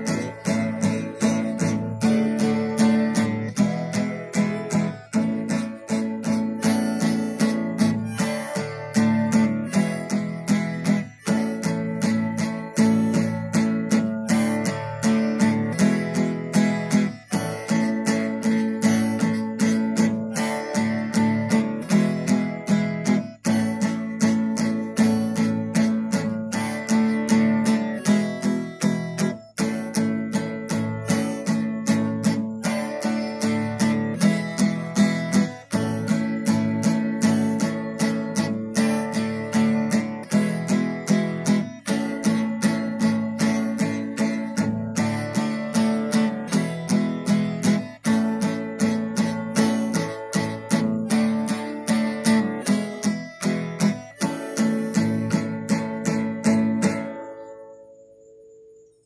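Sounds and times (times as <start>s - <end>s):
acoustic guitar strumming: 0.0s - 59.0s.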